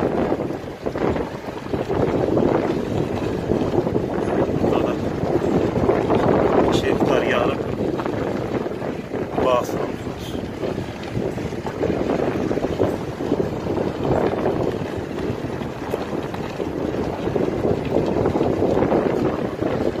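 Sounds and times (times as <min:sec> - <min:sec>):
wind buffeting microphone: 0:00.0 - 0:20.0
moving vehicle rumble: 0:02.5 - 0:20.0.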